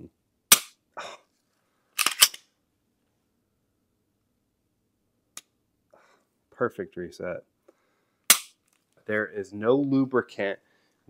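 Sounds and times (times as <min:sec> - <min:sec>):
pistol action clicking: 0:02.0 - 0:02.4, 0:08.3 - 0:08.5.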